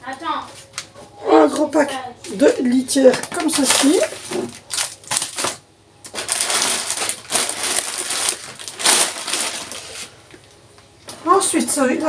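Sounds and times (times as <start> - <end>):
packaging rustling and crunching: 3.1 - 10.2.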